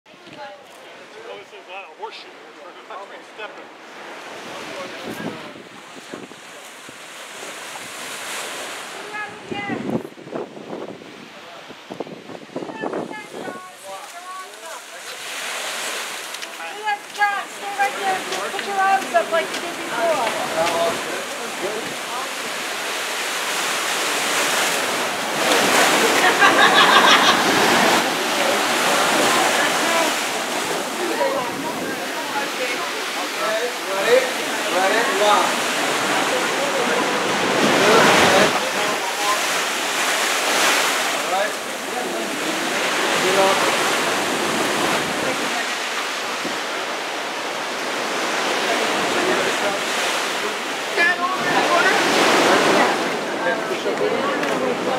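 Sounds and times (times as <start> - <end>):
surf rushing around rocks: 0.1 - 54.9
faint voices: 11.0 - 54.9.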